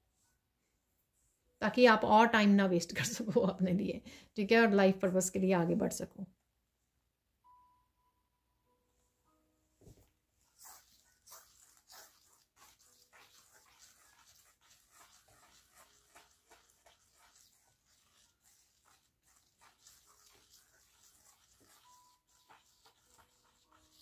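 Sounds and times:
fingers sweeping sand on metal: 10.6 - 24.0.

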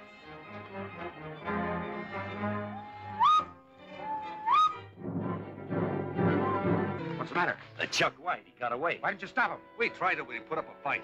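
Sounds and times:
film score music: 0.0 - 11.0
rising whistled calls: 2.7 - 4.9.

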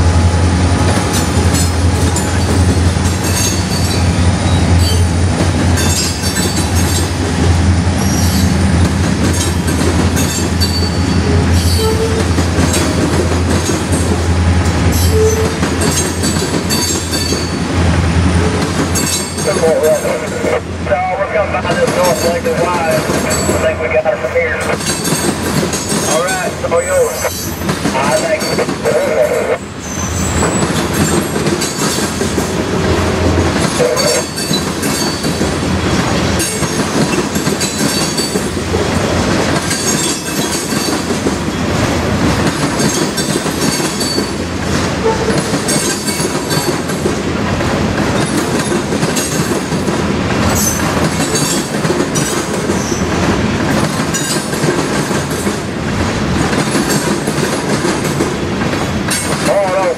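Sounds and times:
steel wheels rolling on rail: 0.0 - 59.9
clacking over rail joints: 14.9 - 17.6, 24.8 - 29.3, 30.3 - 59.9
high wheel squeals: 29.2 - 31.2.

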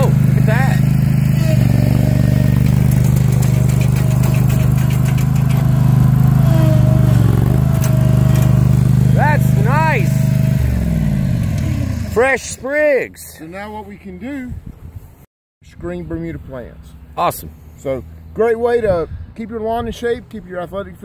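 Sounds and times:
small engine running: 0.0 - 12.2.

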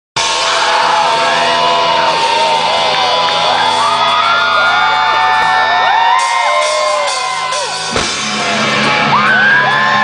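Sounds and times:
crowd whooping and shouting: 0.2 - 10.0
live rock band: 0.2 - 10.0
sharp drum hit: 7.9 - 8.7.

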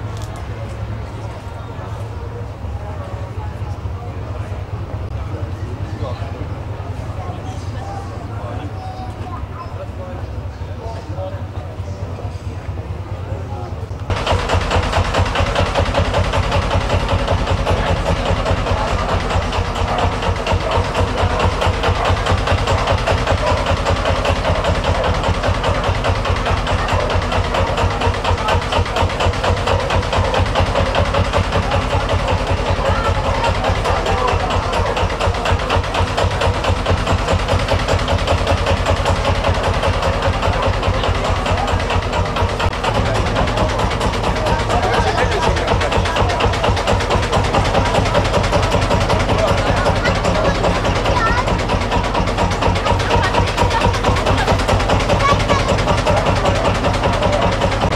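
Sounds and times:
tractor engine idling: 0.0 - 57.9.

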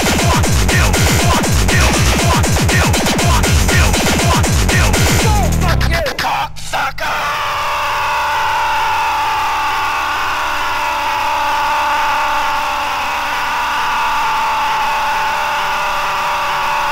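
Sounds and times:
steady electronic drone: 0.0 - 6.3.

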